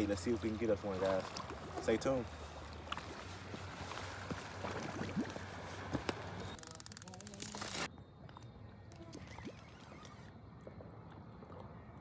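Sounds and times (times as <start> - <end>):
fishing reel clicker ratcheting: 6.6 - 7.8.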